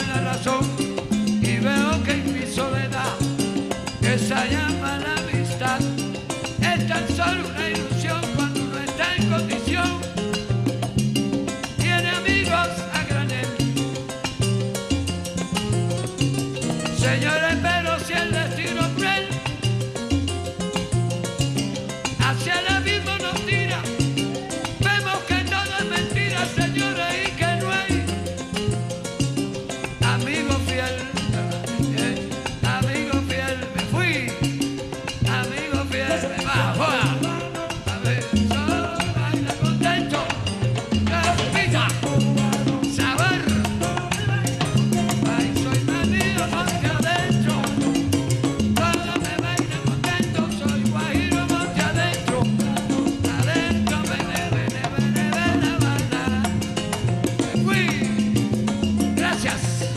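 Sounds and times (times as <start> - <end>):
salsa band music: 0.0 - 59.9.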